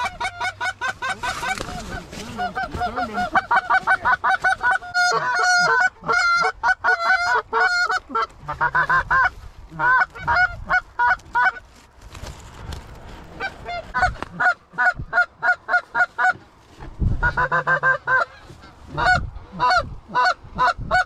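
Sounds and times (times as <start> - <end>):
geese honking: 0.0 - 11.6, 17.2 - 21.0.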